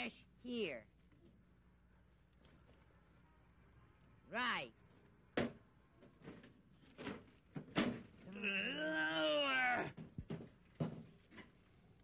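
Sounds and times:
sharp knocks and thuds: 0:05.4 - 0:08.2, 0:10.0 - 0:11.5.

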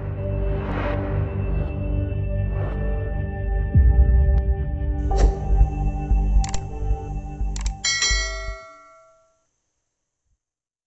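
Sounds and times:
bright bell chime: 0:07.8 - 0:09.4.

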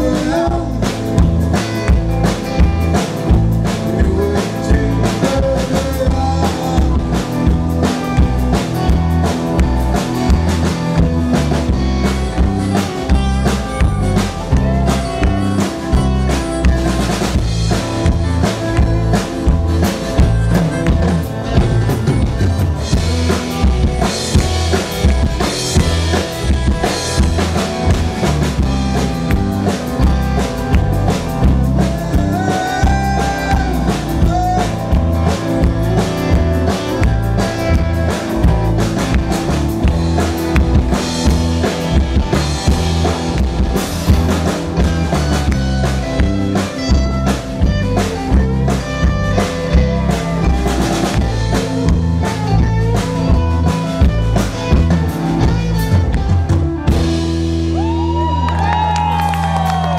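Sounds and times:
strummed acoustic guitars: 0:00.0 - 0:57.8
drum kit beat: 0:00.0 - 0:59.9
sliding guitar notes: 0:00.0 - 0:59.9.

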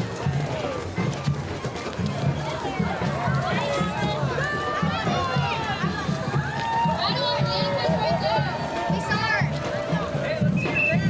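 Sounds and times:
faint music with low beat: 0:00.0 - 0:11.0
young voices talking and calling: 0:00.0 - 0:11.0.

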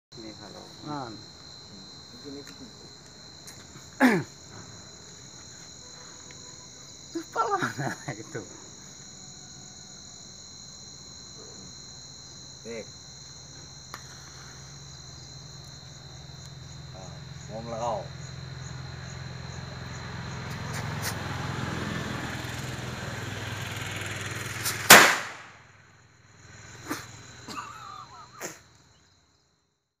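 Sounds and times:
crickets chirring: 0:00.1 - 0:30.0
firecracker bang: 0:23.5 - 0:25.7
faint sharp cracks: 0:24.6 - 0:25.6.

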